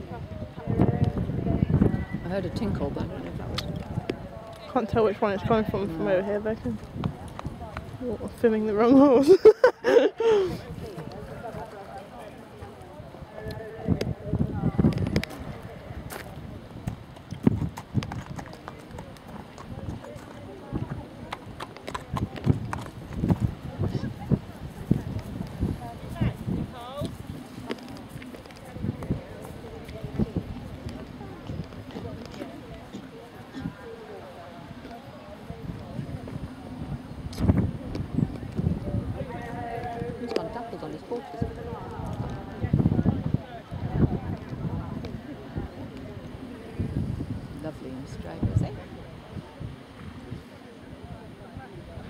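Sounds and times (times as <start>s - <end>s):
faint voices: 0.0s - 52.0s
horse hoofbeats: 16.8s - 34.0s.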